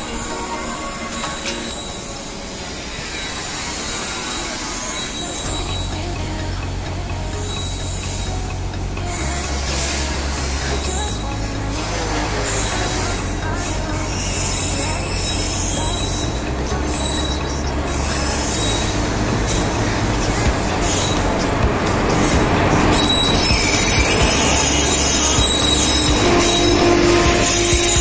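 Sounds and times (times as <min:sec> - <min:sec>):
train wheels rumbling and squealing: 0:00.0 - 0:06.3, 0:07.3 - 0:28.0
locomotive humming: 0:00.0 - 0:28.0.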